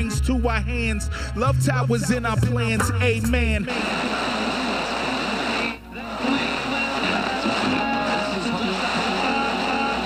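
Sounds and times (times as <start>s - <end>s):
instrumental backing music: 0.0s - 4.2s.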